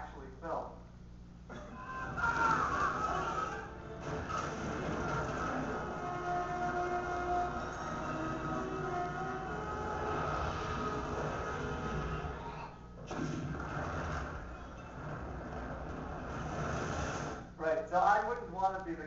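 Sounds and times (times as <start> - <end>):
held musical tones: 1.8 - 12.1.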